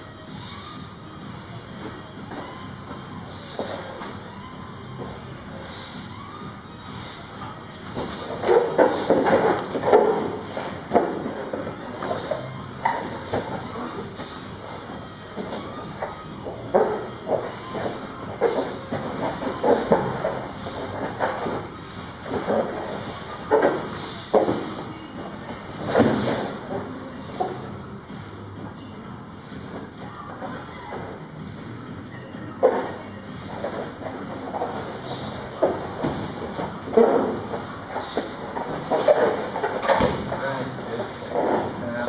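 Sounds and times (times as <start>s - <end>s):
bodies thumping on foam mats: 7.7s - 27.8s, 32.6s - 41.8s.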